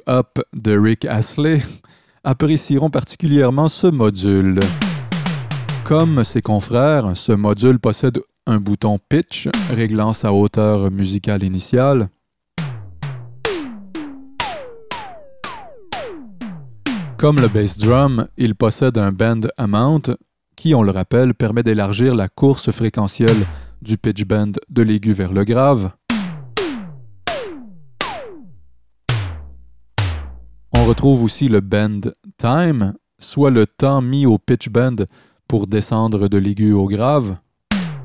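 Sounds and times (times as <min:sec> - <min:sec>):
synthesized tom-tom hits: 0:04.6 - 0:06.4, 0:09.5 - 0:10.0, 0:12.6 - 0:18.4, 0:23.3 - 0:23.9, 0:26.1 - 0:31.2, 0:37.7 - 0:38.0.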